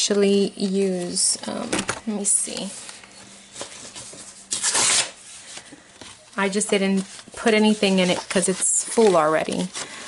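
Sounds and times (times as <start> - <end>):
paper pages rustling: 2.5 - 10.0.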